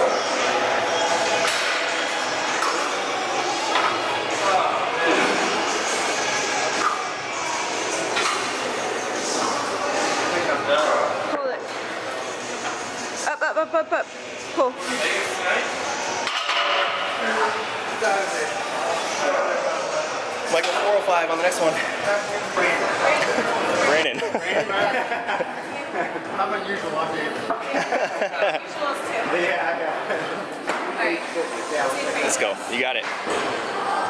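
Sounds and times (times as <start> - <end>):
indistinct voices and chatter: 0.0 - 34.0.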